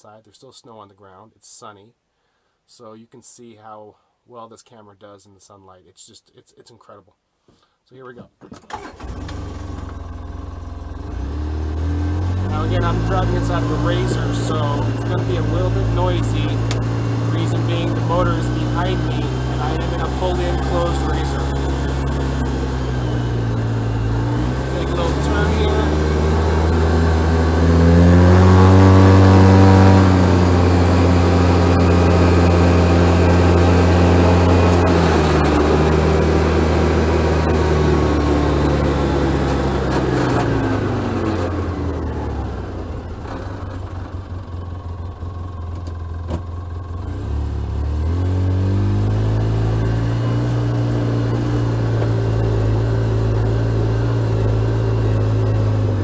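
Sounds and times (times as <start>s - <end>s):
vehicle engine driving: 8.7s - 56.0s.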